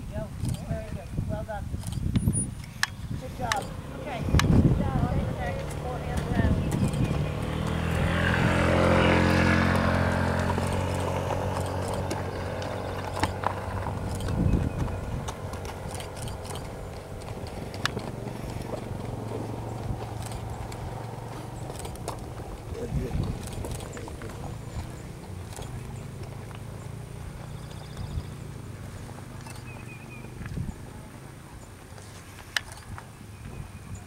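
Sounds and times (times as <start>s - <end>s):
motor engine humming: 0.0s - 33.7s.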